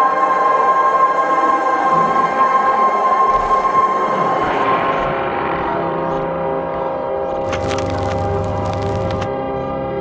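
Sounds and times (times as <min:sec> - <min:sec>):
background music: 0:00.0 - 0:10.0
static crackling: 0:07.4 - 0:09.3.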